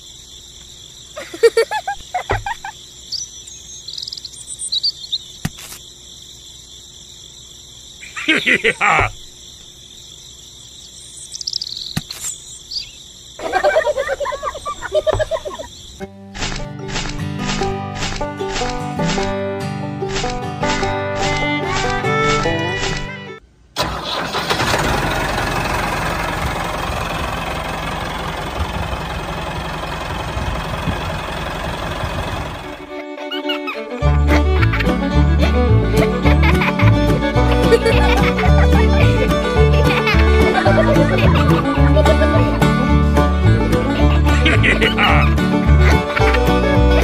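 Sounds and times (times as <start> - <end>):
insects chirring: 0.0 - 23.8, 25.6 - 47.0
person laughing: 1.2 - 2.8, 8.0 - 9.2, 13.4 - 15.8, 33.3 - 47.0
tractor diesel engine idling: 23.8 - 33.0.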